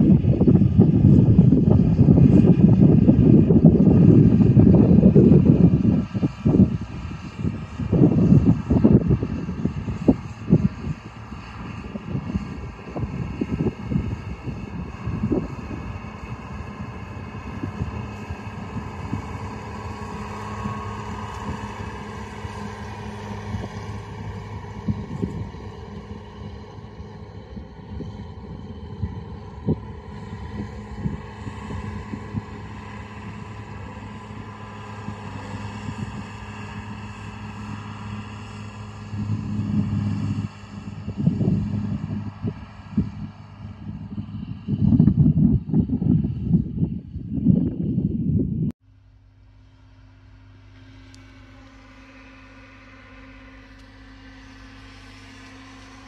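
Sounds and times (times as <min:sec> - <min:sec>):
tractor diesel engine droning: 0:00.0 - 0:56.0.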